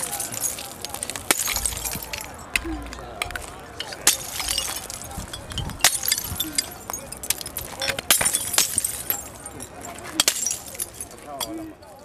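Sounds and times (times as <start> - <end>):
glass breaking and crunching: 0.0 - 11.7
glass shards clinking: 0.0 - 11.8.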